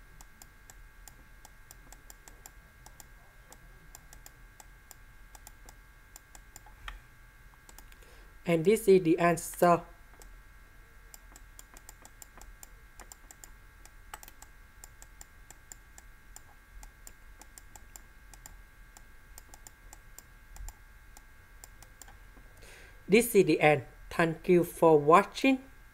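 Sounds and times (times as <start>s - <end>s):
faint electrical hum: 0.0s - 25.9s
faint clicks and taps of handwriting: 11.2s - 13.5s.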